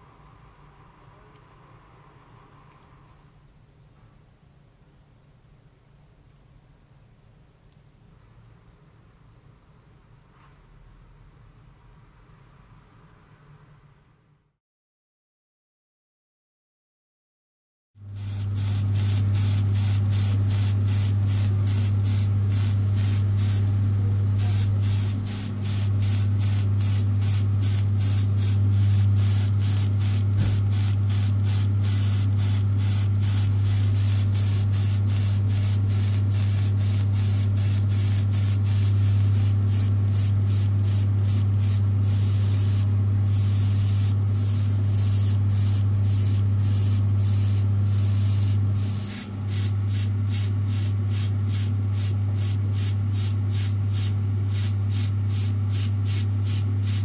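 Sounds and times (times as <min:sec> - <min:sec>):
steady low hum: 0:18.0 - 0:57.0
paint spray hissing: 0:18.2 - 0:23.6, 0:24.4 - 0:57.0.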